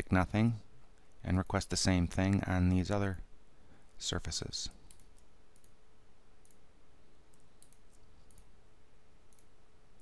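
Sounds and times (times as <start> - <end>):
faint steady hum: 0.0 - 10.0
computer mouse clicks: 4.8 - 5.8, 6.4 - 6.6, 7.3 - 8.5, 9.3 - 10.0.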